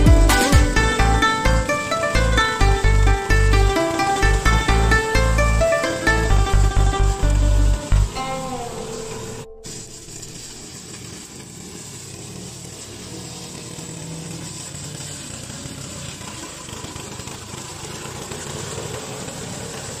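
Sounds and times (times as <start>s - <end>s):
lawn mower engine running: 0.0s - 20.0s.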